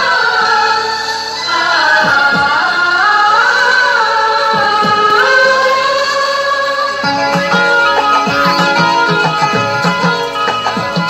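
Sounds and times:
instrumental music: 0.0s - 11.0s.

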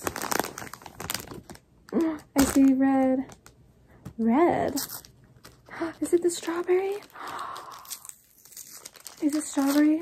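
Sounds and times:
wrapper crinkling and tearing: 0.0s - 3.6s, 4.5s - 10.0s.

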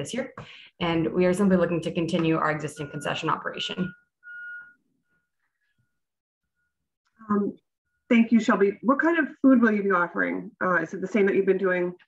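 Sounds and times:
high-pitched whistle-like tone: 2.7s - 5.3s.

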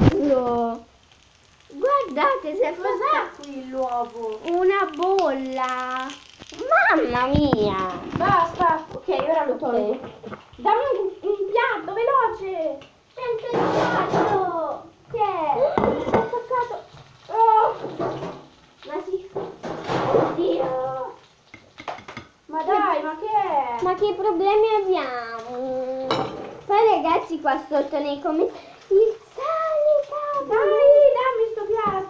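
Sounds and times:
girls talking: 0.0s - 0.9s, 1.7s - 17.9s, 18.8s - 21.2s, 22.5s - 32.0s
spatula scraping frying pan: 13.4s - 14.5s.

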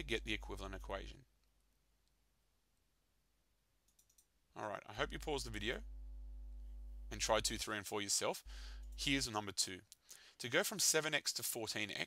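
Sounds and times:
man's voice: 0.0s - 1.2s, 4.6s - 5.8s, 7.1s - 8.4s, 9.0s - 9.8s.

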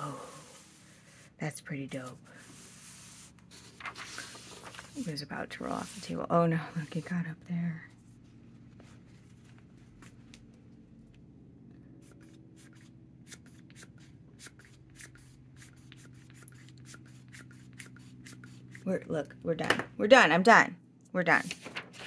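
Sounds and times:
steady low hum: 0.0s - 22.0s
paper towel rubbing: 2.0s - 7.2s.

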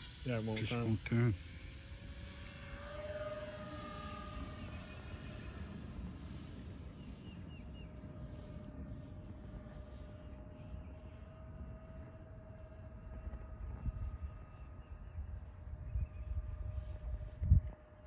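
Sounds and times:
model airplane motors whining: 0.0s - 18.0s.

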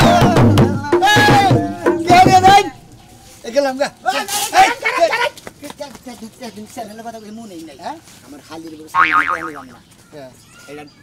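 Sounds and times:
cartoon boing effect: 9.0s - 9.8s.

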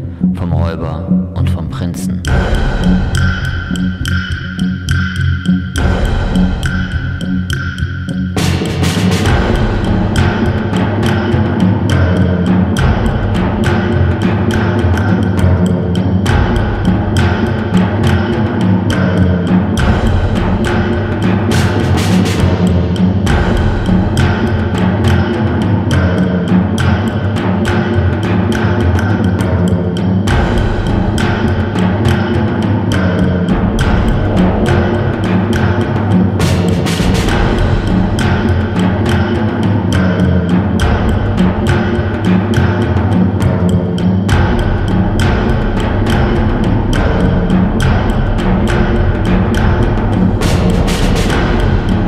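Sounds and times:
driving electronic drums: 0.0s - 52.0s
electronic bass line: 33.4s - 39.4s.

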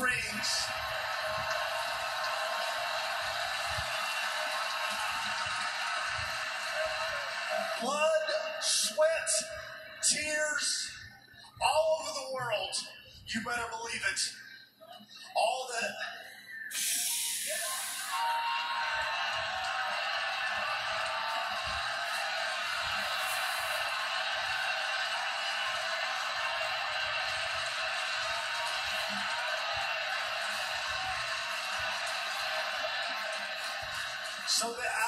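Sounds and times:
crowd cheering through tv speaker: 0.0s - 14.2s, 15.0s - 35.0s.

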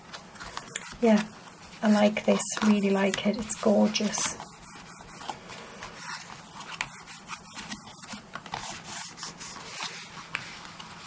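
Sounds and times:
hands rubbing paper: 0.0s - 11.0s.

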